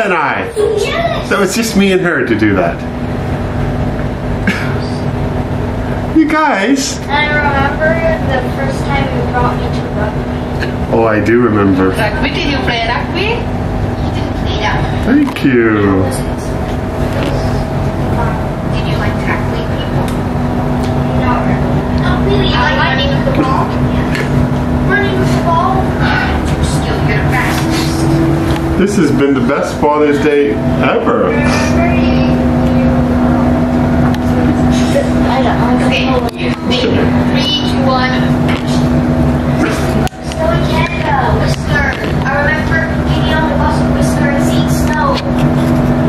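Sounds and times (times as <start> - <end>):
indistinct voices: 0.0 - 46.0
steady low hum: 0.0 - 46.0.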